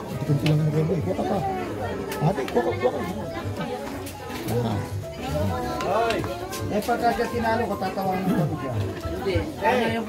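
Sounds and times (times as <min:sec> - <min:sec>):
chatter of voices: 0:00.0 - 0:10.0
music: 0:00.0 - 0:10.0.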